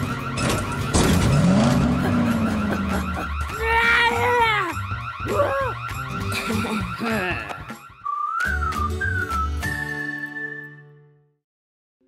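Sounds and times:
cartoon car engine: 0:00.0 - 0:04.5
background music: 0:00.0 - 0:11.3.

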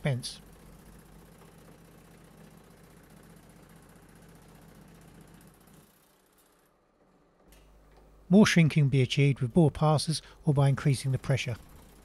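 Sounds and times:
low motor hum: 0:10.9 - 0:12.0.

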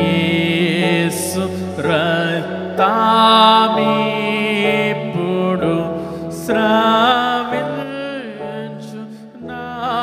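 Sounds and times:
man singing a hymn: 0:00.0 - 0:10.0.

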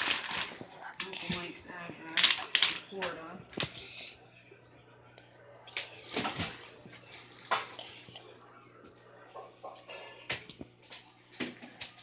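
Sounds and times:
low pump hum: 0:02.8 - 0:12.0.

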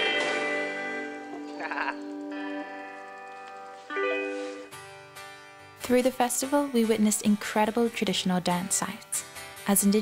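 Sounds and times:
electric guitar notes ringing: 0:00.0 - 0:05.6.

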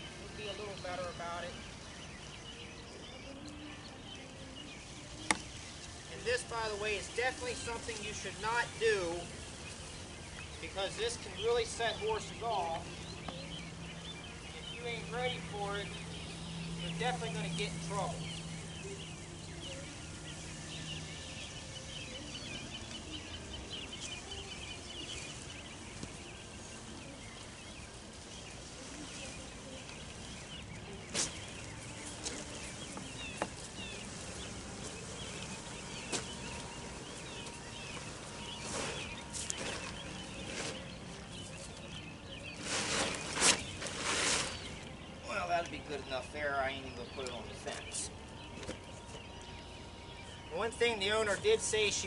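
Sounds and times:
small birds chirping: 0:00.0 - 0:52.0
steady outdoor hiss: 0:00.0 - 0:52.0
rustling thuds: 0:42.5 - 0:44.8.

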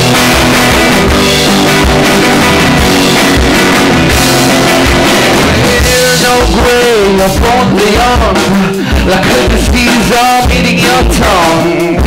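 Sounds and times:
drum kit: 0:00.0 - 0:12.0
electric guitar strummed: 0:00.0 - 0:12.0.

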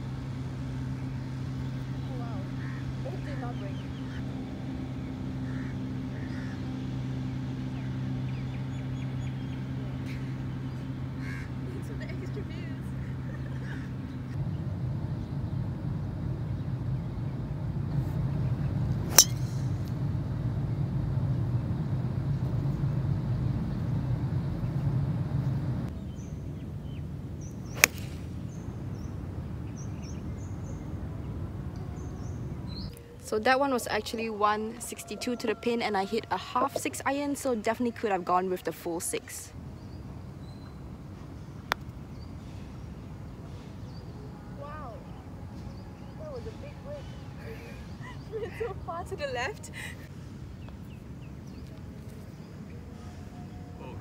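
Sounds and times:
low hum: 0:00.0 - 0:35.0
birds chirping: 0:00.6 - 0:14.6, 0:25.9 - 0:54.0
golf club striking ball: 0:19.1 - 0:19.8, 0:27.7 - 0:28.6.

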